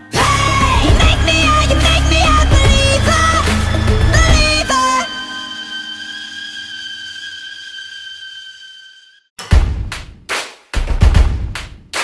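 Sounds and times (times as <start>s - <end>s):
high sustained sung note: 4.2s - 9.3s.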